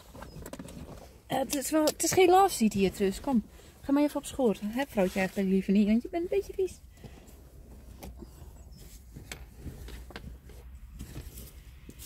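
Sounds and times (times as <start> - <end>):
clothing rustling: 0.0 - 12.0.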